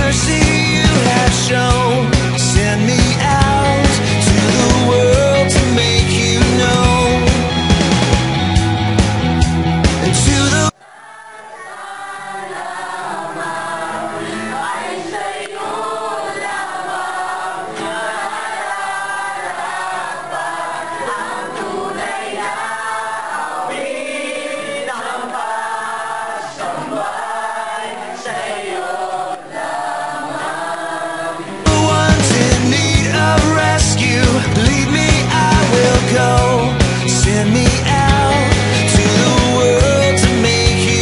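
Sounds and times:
group singing worship song: 0.0 - 8.6, 9.8 - 41.0
rock song: 0.0 - 10.8, 31.4 - 41.0.

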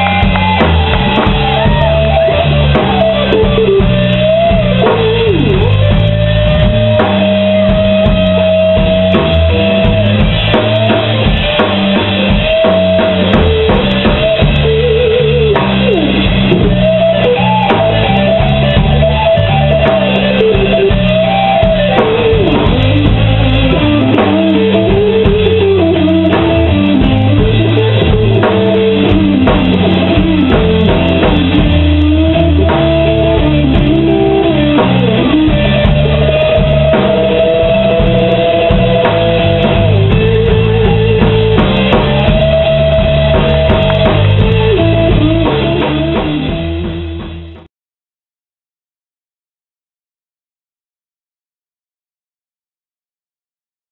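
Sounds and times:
lead guitar line bending pitch: 0.0 - 47.7
rock band playing: 0.0 - 47.7.

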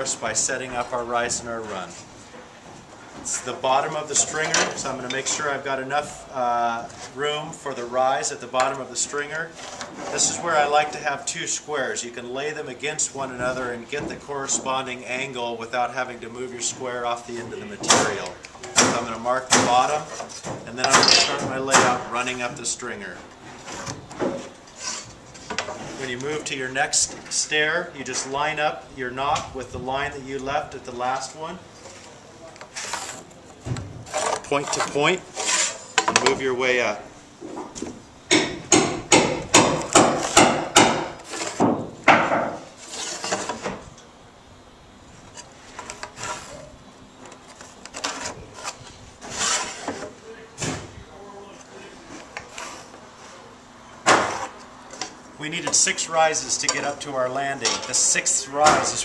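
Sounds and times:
metal square rubbing on wood: 34.1 - 36.0, 42.8 - 43.5, 48.1 - 49.9.

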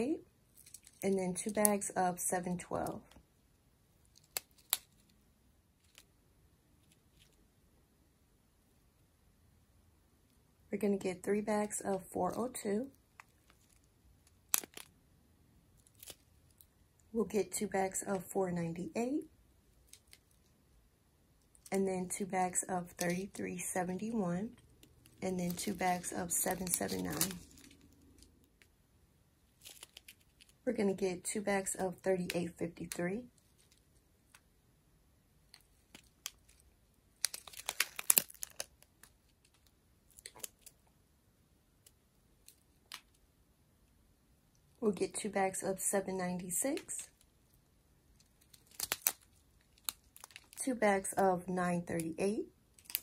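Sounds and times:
sharp plastic crackle: 4.0 - 5.2, 12.9 - 15.0, 15.7 - 16.7, 19.7 - 20.5, 24.5 - 28.7, 29.5 - 30.6, 35.4 - 40.9, 47.0 - 50.6, 52.7 - 53.0
plastic bags crinkling: 13.2 - 14.9, 24.8 - 28.4, 29.5 - 30.6, 35.5 - 40.8, 48.2 - 50.6.

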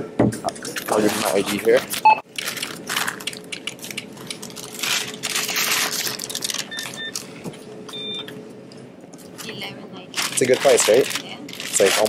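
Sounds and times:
paper bag rustling and crinkling: 0.6 - 7.3, 10.1 - 12.0
electronic checkout beeps: 6.7 - 7.2, 7.9 - 8.3.

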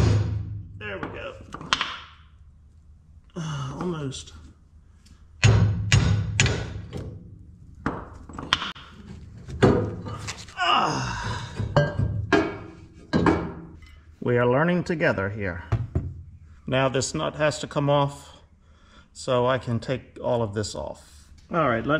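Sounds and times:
hammer striking steel bar: 5.4 - 6.9.

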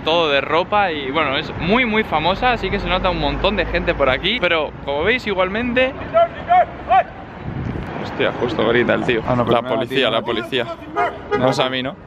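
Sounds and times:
man shouting angrily: 6.0 - 7.2, 9.5 - 11.7.

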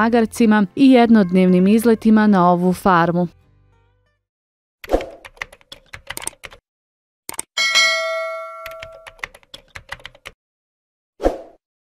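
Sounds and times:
typewriter-style clicks: 5.3 - 6.6, 7.3 - 7.5, 8.6 - 10.4
bright bell chime: 7.6 - 9.2.

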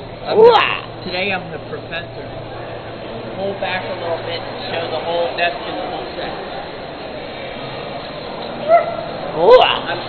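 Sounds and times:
background hubbub: 0.0 - 10.0.

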